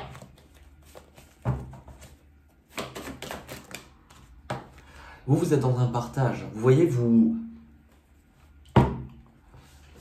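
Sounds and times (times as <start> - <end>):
cards being shuffled: 0.0 - 4.8.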